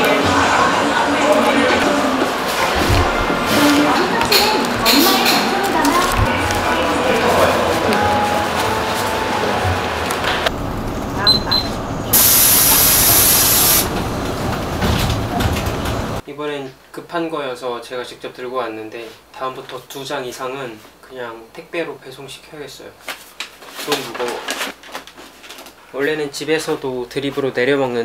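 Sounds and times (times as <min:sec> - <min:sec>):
people chattering: 0:00.0 - 0:10.5
loud steady hiss: 0:12.1 - 0:14.0.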